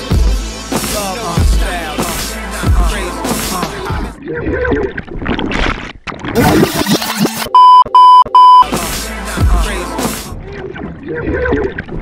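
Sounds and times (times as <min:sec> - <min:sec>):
music: 0:00.0 - 0:04.2, 0:08.4 - 0:10.6
electronic beeps: 0:07.4 - 0:08.7.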